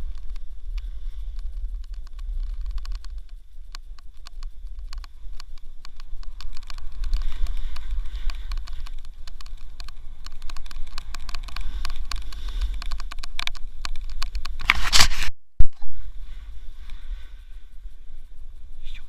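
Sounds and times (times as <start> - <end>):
wind buffeting microphone: 0.0 - 15.1.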